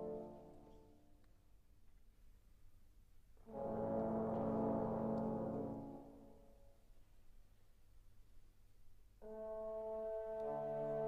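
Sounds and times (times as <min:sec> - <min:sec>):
trombones holding low chord: 0:03.4 - 0:06.6, 0:09.2 - 0:11.0.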